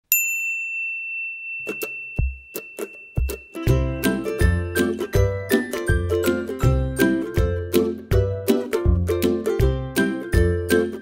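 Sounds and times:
bright bell-like ding: 0:00.1 - 0:03.6.

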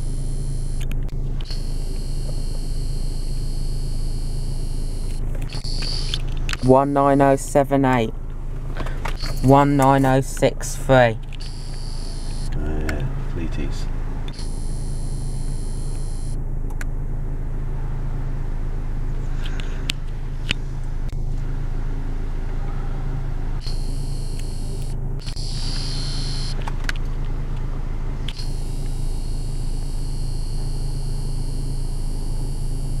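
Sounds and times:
vehicle engines idling: 0:00.0 - 0:33.0.

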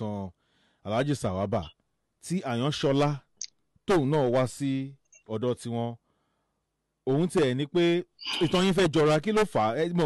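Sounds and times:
man speaking into a microphone: 0:00.0 - 0:06.0, 0:07.0 - 0:10.0.

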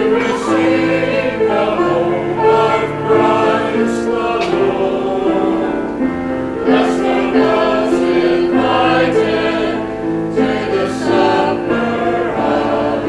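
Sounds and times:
choir singing a hymn: 0:00.0 - 0:13.0
low sustained accompaniment: 0:00.0 - 0:13.0.

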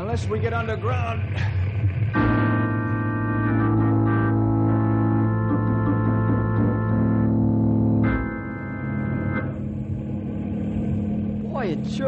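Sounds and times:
helicopter engine drone: 0:00.0 - 0:12.0
organ chords: 0:00.0 - 0:12.0.

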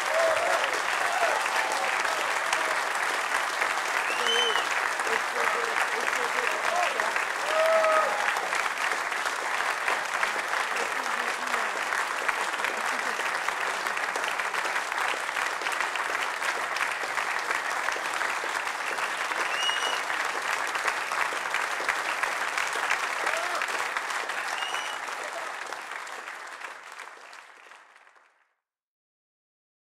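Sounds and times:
audience applauding: 0:00.0 - 0:28.4.

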